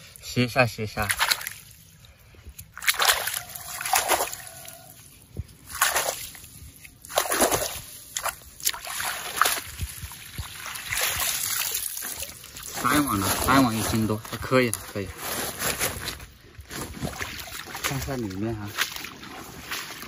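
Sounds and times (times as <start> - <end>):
water splashing and sloshing: 0.0 - 20.0.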